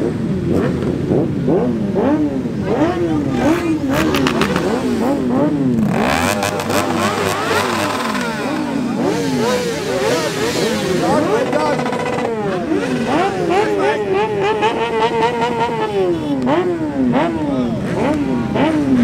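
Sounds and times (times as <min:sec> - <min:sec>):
motorcycle engines revving: 0:00.0 - 0:19.0.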